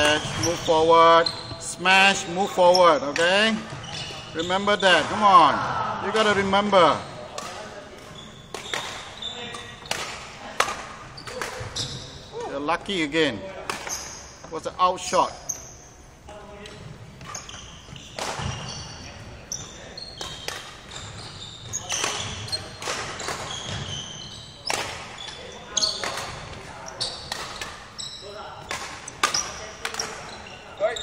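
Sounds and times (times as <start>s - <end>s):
shoes squeaking on wooden floor: 0.0s - 5.3s, 8.0s - 10.0s, 11.1s - 12.5s, 16.8s - 28.6s, 29.2s - 31.0s
racket striking shuttlecock: 7.3s - 11.7s, 20.2s - 20.9s.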